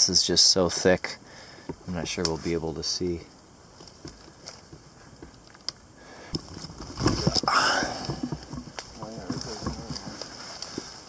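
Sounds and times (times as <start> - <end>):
rustling: 1.6 - 11.0.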